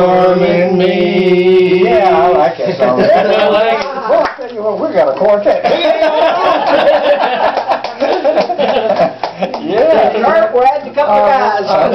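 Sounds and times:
men talking: 1.8 - 11.9
men laughing: 2.7 - 4.2, 5.6 - 10.2.

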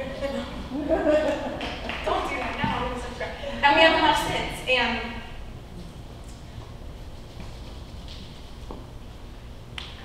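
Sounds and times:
steady low hum: 0.0 - 10.0
finger snap: 9.7 - 10.0.

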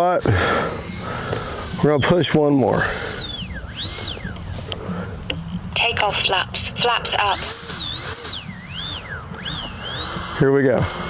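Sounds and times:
electric ducted fans whining: 0.0 - 11.0.

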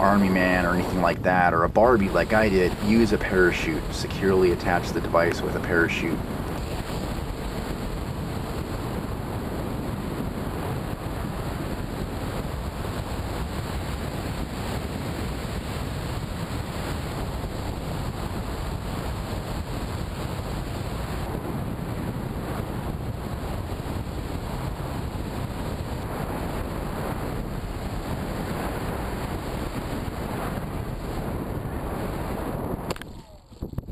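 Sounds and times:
wind rushing on microphone: 0.0 - 33.9.

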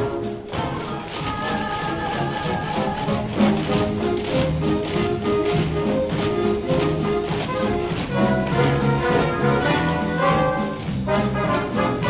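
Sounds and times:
band playing upbeat show tune: 0.0 - 12.0
tap dancing on stage floor: 0.4 - 12.0.

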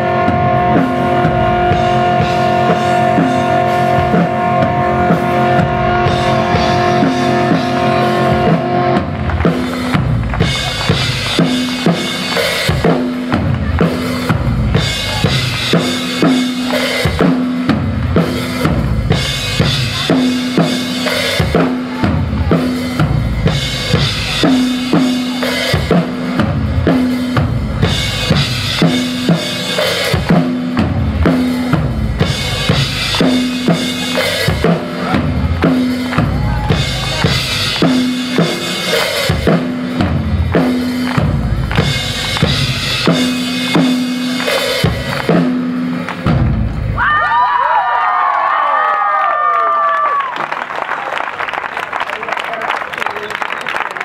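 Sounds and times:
live rock band playing: 0.0 - 47.2
drum kit: 0.0 - 47.7.

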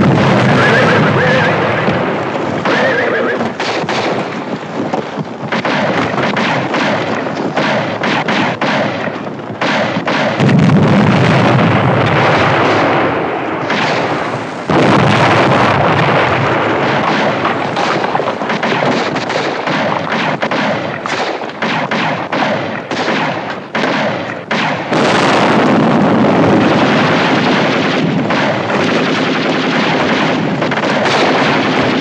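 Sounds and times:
explosions: 0.0 - 32.0
rapid rifle fire: 0.0 - 32.0.

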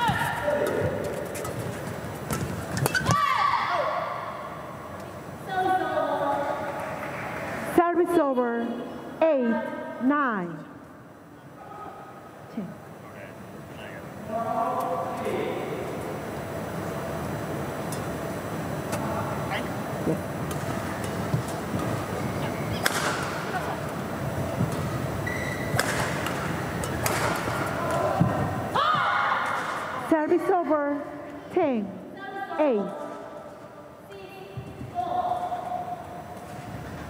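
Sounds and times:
players shouting: 0.0 - 1.0
hall and crowd noise: 0.0 - 37.0
rackets hitting shuttlecock: 22.8 - 23.5, 25.5 - 28.5.

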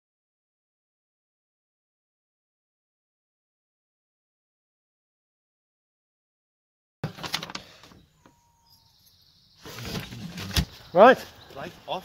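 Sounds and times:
man speaking: 10.9 - 12.0.

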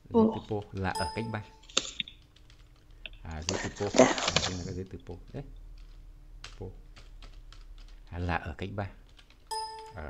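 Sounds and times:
computer keyboard typing: 0.5 - 10.0.

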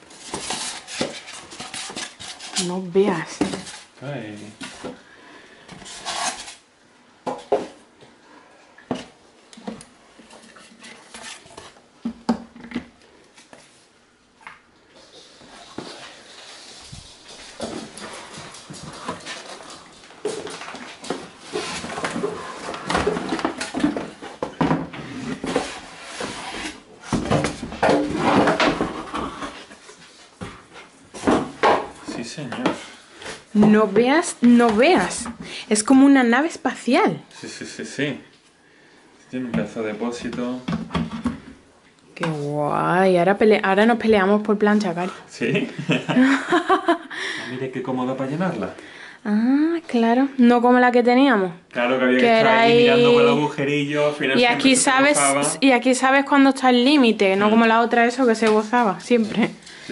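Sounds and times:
cardboard and polystyrene rustling: 0.0 - 4.9, 15.0 - 35.3.

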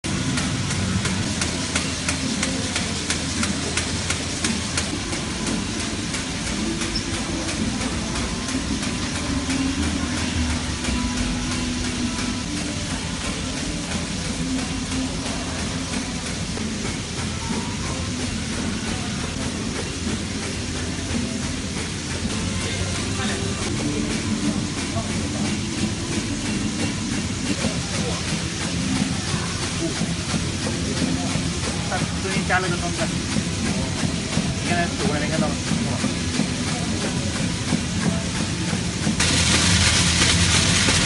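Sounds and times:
low machine hum: 0.0 - 41.0
machine clattering and ticking: 0.0 - 41.0.

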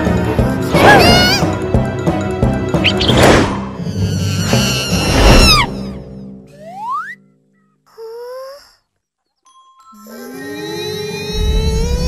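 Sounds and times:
cartoon music: 0.6 - 1.6, 2.7 - 7.4.

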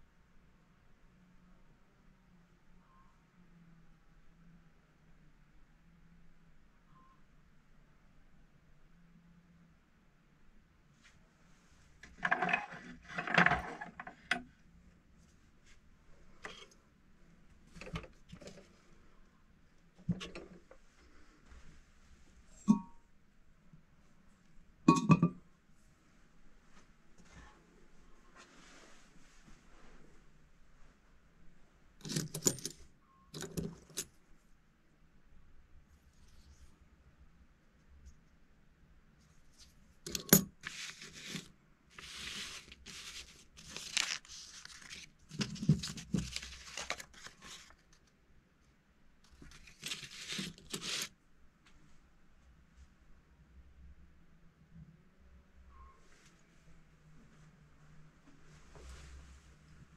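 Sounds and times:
coins clinking on table: 32.0 - 32.8, 40.1 - 41.4
banknotes rustling: 40.1 - 48.0, 49.3 - 51.1.

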